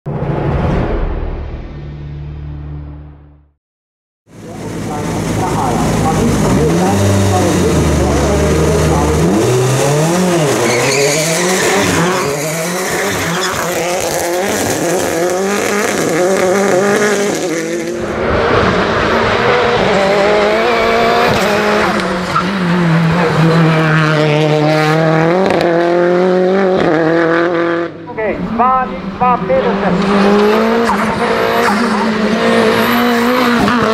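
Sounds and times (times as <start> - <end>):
race car engines revving: 4.3 - 33.9.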